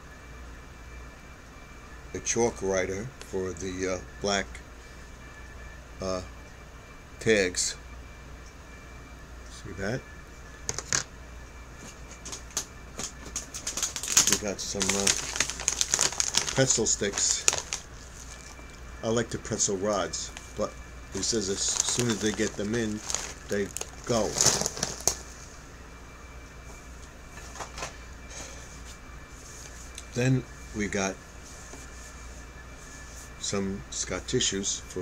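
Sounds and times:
low room hum: 0.0s - 35.0s
packaging rustling and clicking: 12.1s - 18.8s, 21.2s - 25.2s.

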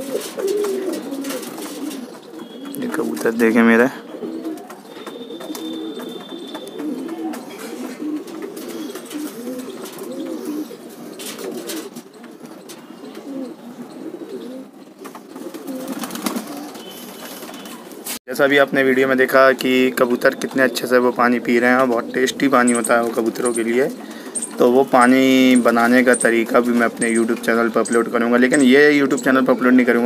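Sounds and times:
pigeons cooing: 0.0s - 18.2s, 19.6s - 30.0s.

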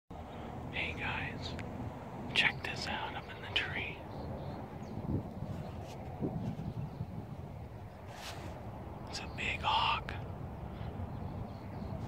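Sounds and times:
low background rumble: 0.1s - 12.0s
person whispering: 0.7s - 1.6s, 2.3s - 4.0s, 9.1s - 10.2s.

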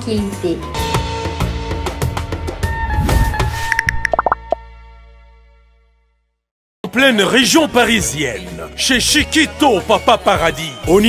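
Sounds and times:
bubbly pops: 3.8s - 4.6s.

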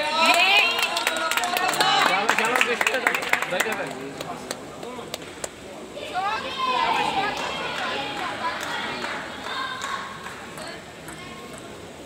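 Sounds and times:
voices in a sports hall: 0.0s - 12.0s.

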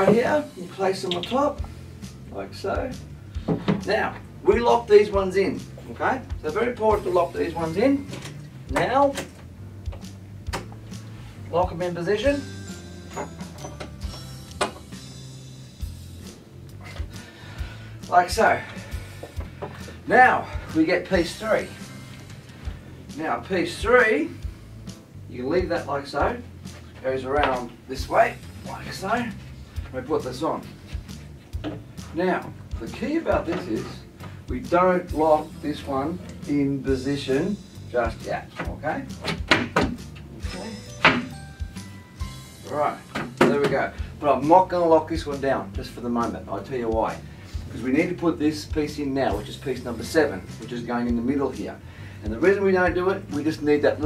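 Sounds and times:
background music: 0.0s - 54.0s
cabinet panel knocking: 39.2s - 40.0s.

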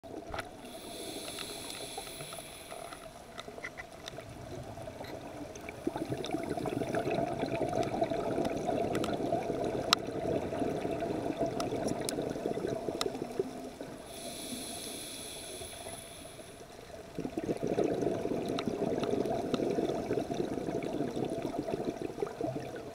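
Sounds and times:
steady underwater hiss: 0.1s - 22.9s
diver inhaling through regulator: 0.6s - 3.2s, 13.9s - 16.7s
underwater crackling clicks: 1.2s - 6.4s, 7.7s - 10.1s, 11.5s - 13.4s, 18.4s - 19.7s.

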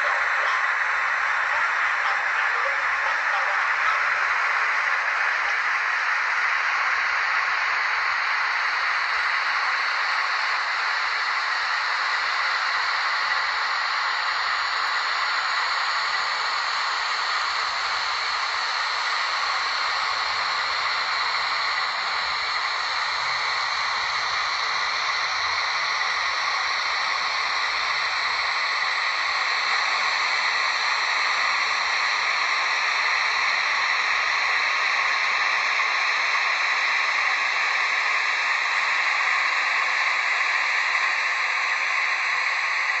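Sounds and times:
model train motor whirring on rails: 0.0s - 43.0s.

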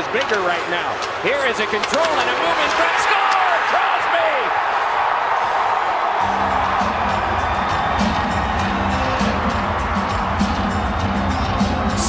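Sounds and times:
arena crowd cheering: 0.0s - 12.0s
music with steady bass line: 6.2s - 12.0s.

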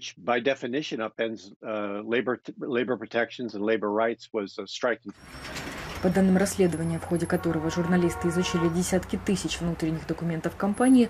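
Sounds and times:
man talking: 0.0s - 5.2s.

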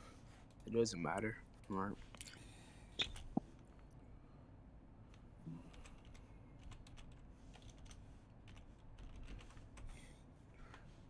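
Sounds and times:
faint keyboard typing: 0.4s - 1.8s, 5.1s - 11.0s.

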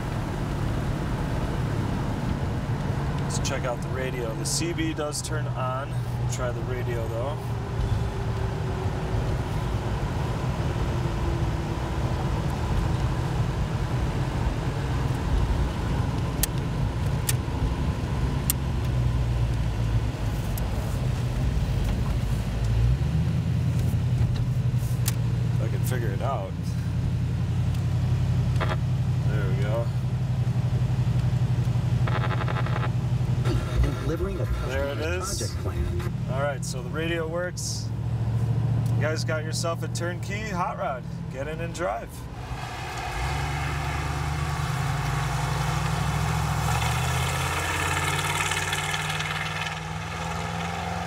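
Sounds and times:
car engine rumble: 0.0s - 51.0s
road noise inside car cabin: 0.0s - 51.0s.

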